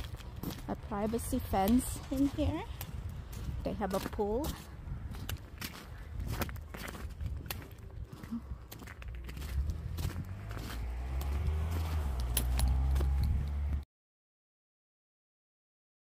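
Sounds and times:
footsteps crunching on snow: 0:00.0 - 0:13.8
low rumble: 0:04.6 - 0:13.8.

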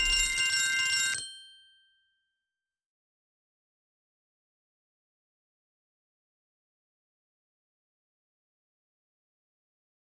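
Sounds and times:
bell-like game chime: 0:00.0 - 0:02.0.

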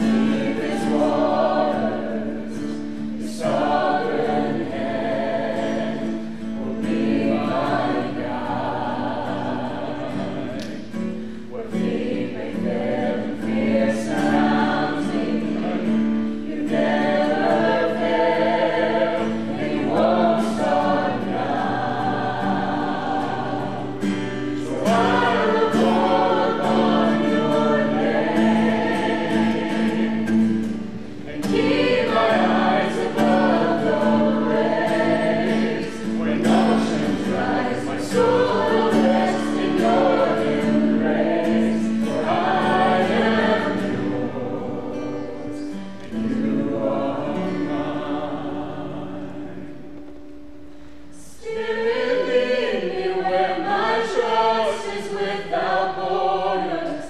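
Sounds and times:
group singing: 0:00.0 - 0:50.2, 0:51.1 - 0:57.0
acoustic guitar: 0:00.0 - 0:57.0.

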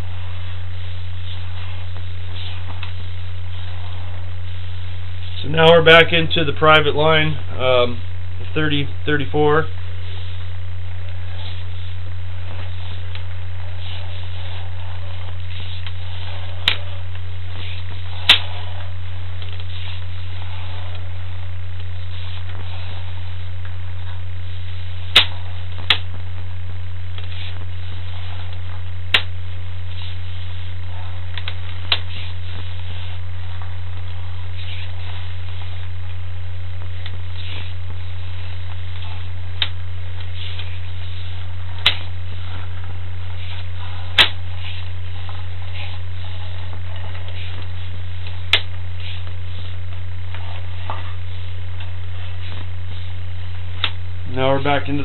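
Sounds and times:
electrical mains hum: 0:00.0 - 0:55.0.

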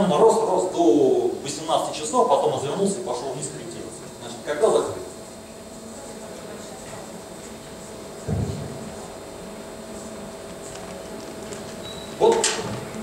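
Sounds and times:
dull low thump: 0:08.3 - 0:08.8.

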